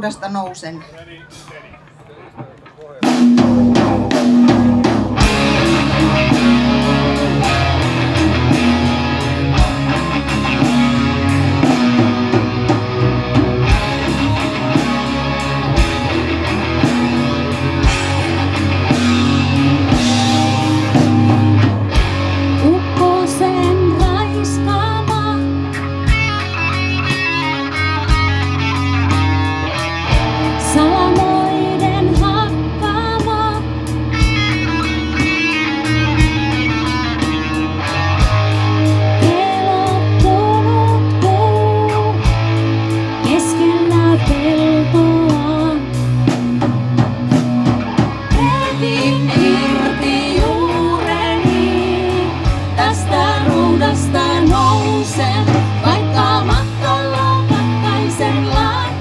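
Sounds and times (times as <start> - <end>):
rock band playing: 0.0 - 59.0
woman singing lead vocal: 22.6 - 25.6, 30.5 - 33.7, 39.2 - 42.3, 43.2 - 46.0, 48.3 - 59.0.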